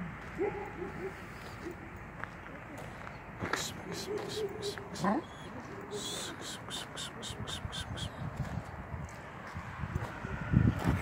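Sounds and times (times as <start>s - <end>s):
footsteps crunching on gravel: 0.0s - 5.8s, 8.2s - 11.0s.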